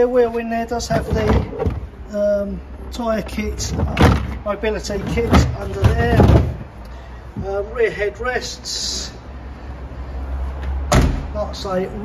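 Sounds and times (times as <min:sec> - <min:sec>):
tailgate slamming shut: 0:03.6 - 0:06.6, 0:10.9 - 0:11.3.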